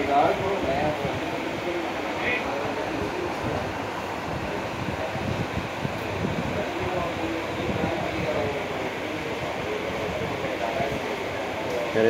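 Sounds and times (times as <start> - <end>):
faint distant voices: 0.0 - 12.0
steady background noise: 0.0 - 12.0.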